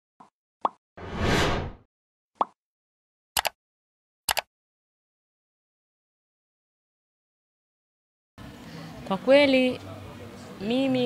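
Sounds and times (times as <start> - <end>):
whoosh: 1.0 - 1.8
quick double click: 4.3 - 4.5.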